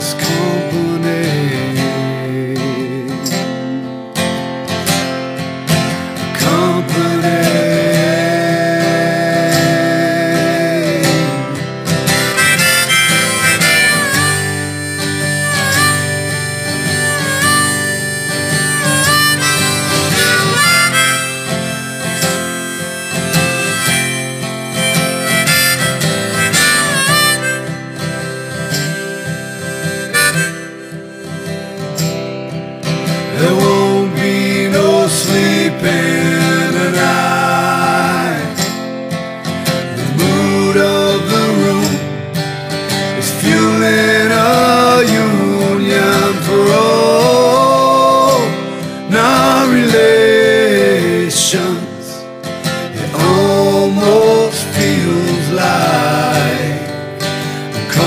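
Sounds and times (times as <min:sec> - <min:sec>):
strummed acoustic guitar: 0:00.0 - 0:58.0
harmonica long held notes: 0:05.8 - 0:58.0.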